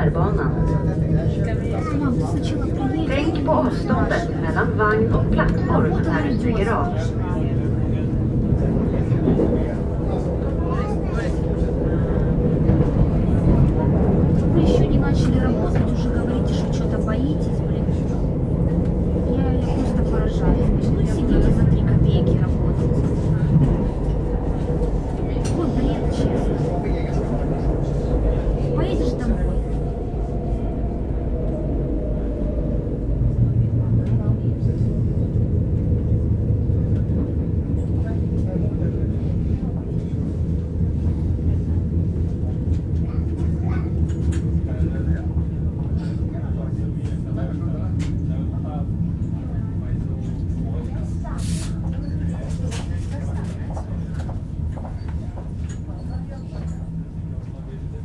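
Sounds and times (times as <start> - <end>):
passengers talking: 0.0 - 58.0
train rumble and hum: 0.0 - 58.0.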